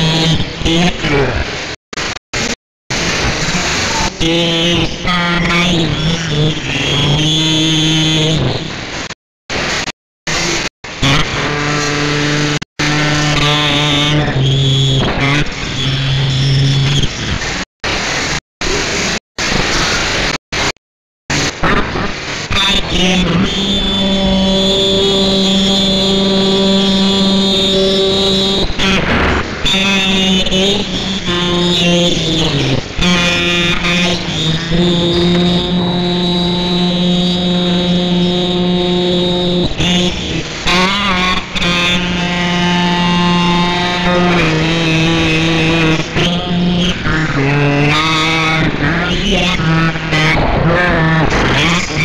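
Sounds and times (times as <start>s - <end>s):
steady droning tone: 0.0s - 52.0s.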